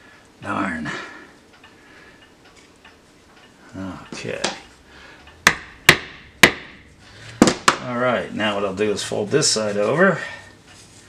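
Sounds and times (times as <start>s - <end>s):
hammer tapping tacks into wood: 5.5s - 6.8s, 7.4s - 7.9s.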